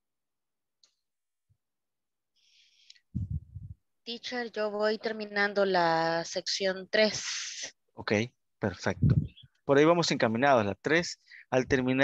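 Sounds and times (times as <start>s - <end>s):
muffled microphone pulsing: 3.1s - 3.8s, 8.9s - 9.5s.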